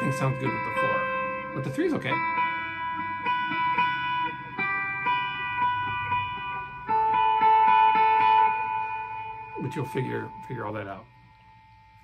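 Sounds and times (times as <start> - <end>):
electric guitar notes ringing: 0.0 - 12.0.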